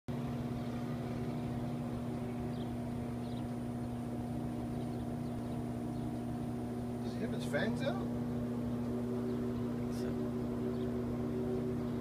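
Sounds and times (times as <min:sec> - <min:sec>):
low machine hum: 0:00.1 - 0:12.0.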